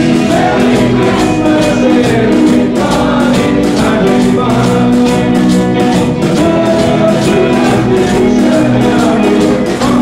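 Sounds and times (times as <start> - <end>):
band playing pop dance music: 0.0 - 10.0
voices singing: 0.0 - 10.0.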